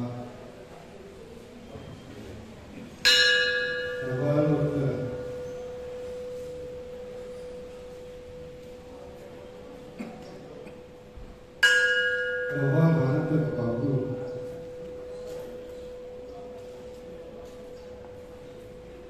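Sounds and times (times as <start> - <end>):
brass bell struck: 3.1 - 7.6
steady ringing tone: 3.1 - 10.0, 10.8 - 19.0.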